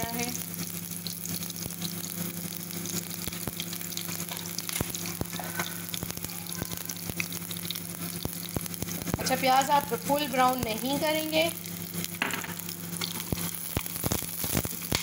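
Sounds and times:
onions sizzling with pops: 0:00.0 - 0:15.0.

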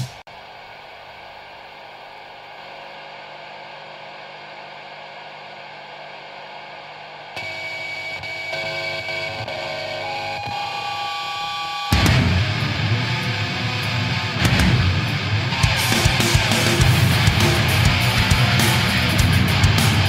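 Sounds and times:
hissing hum: 0:00.0 - 0:20.0.

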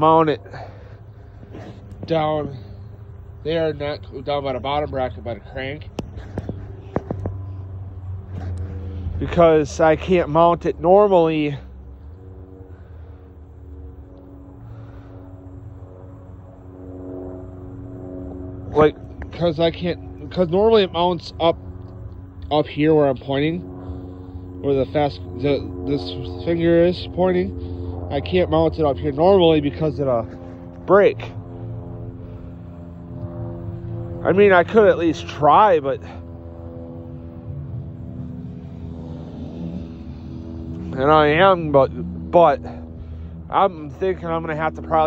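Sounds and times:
low rumble: 0:00.0 - 0:45.0
steady hum of held tones: 0:00.0 - 0:45.0.

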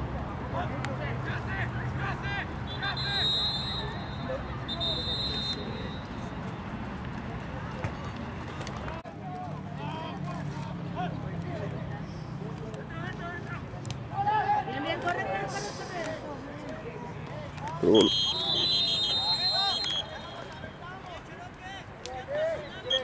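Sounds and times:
whistle blasts: 0:02.7 - 0:06.1, 0:17.9 - 0:20.6
voices chattering and calling out: 0:12.0 - 0:23.0.

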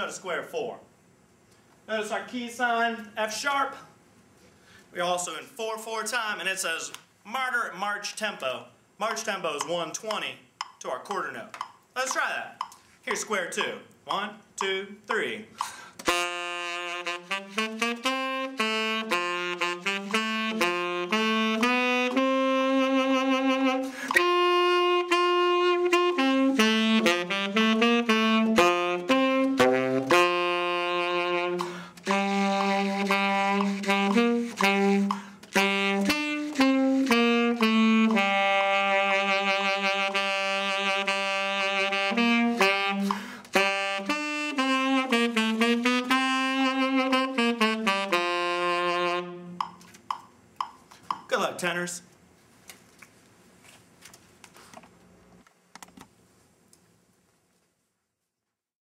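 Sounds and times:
tenor saxophone march melody: 0:16.0 - 0:49.9.

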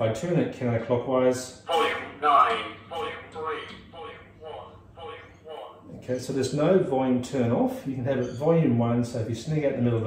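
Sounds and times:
recorded male voice announcing: 0:00.0 - 0:07.6.

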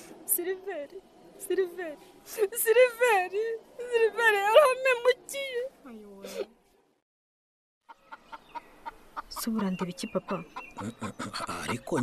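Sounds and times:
chicken clucking: 0:07.9 - 0:12.0.

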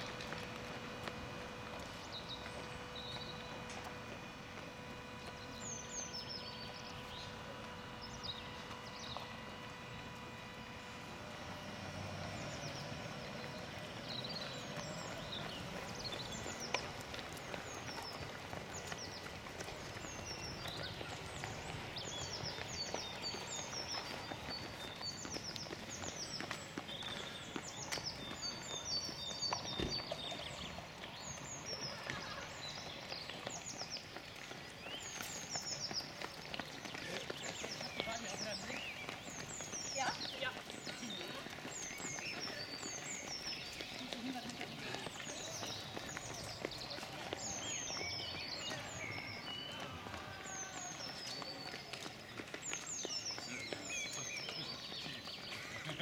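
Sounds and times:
birds chirping: 0:00.0 - 0:56.0
runners' footsteps on road: 0:00.0 - 0:56.0.

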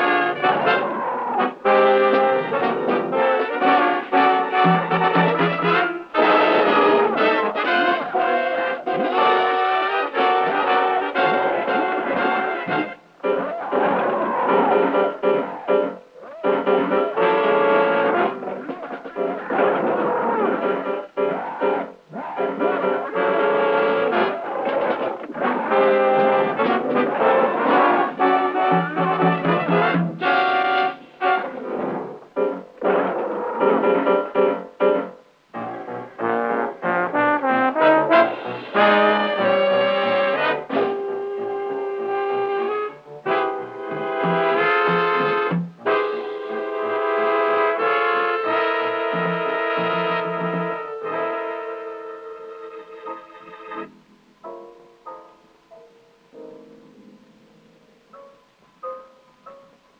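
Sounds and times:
brass-led orchestral music: 0:00.0 - 0:53.9.

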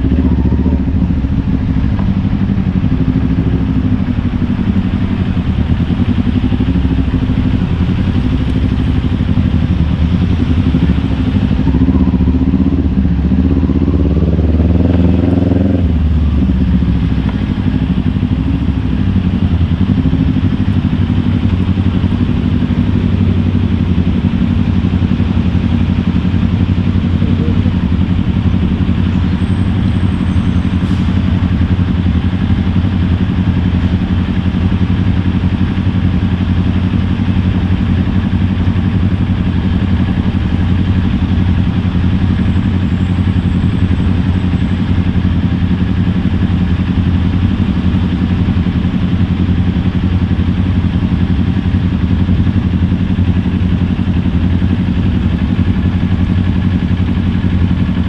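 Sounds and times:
motorcycle engine running steadily: 0:00.0 - 0:58.0.

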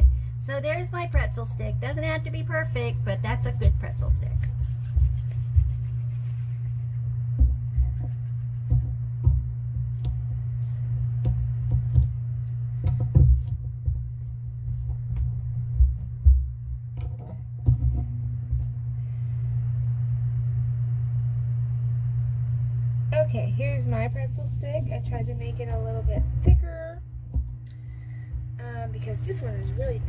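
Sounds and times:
steady low hum: 0:00.0 - 0:30.0
clay knocks and thumps: 0:07.3 - 0:18.8, 0:25.6 - 0:27.6.

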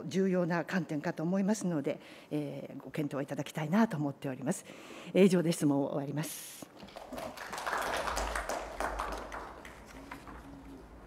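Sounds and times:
scattered handclaps: 0:06.8 - 0:10.5.

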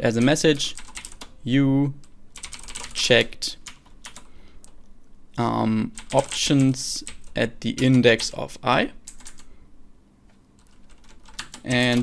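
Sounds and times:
typing on a computer keyboard: 0:00.1 - 0:01.3, 0:02.4 - 0:03.0, 0:03.6 - 0:04.3, 0:06.0 - 0:08.4, 0:09.0 - 0:09.5, 0:10.6 - 0:12.0.

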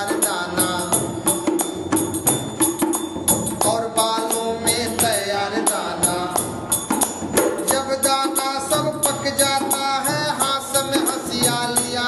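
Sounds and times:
man singing folk devotional song: 0:00.0 - 0:01.6, 0:03.6 - 0:06.7, 0:07.4 - 0:12.0
jingling percussion: 0:00.0 - 0:12.0.

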